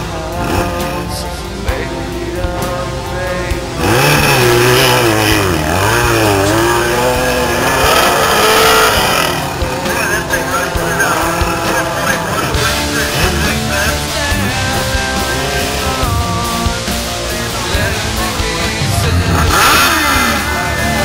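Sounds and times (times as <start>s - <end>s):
dirt bike engine revving: 0.0s - 21.0s
rock music: 0.0s - 21.0s.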